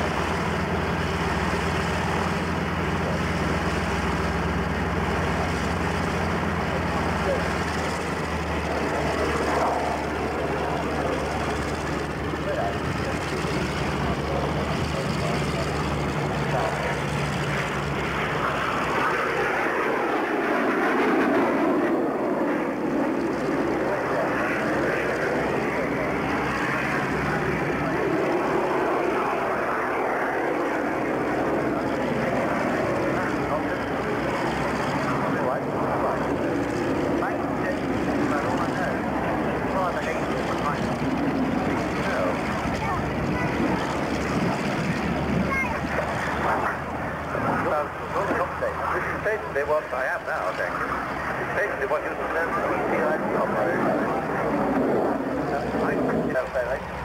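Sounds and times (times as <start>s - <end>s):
propeller plane engines running: 0.0s - 57.0s.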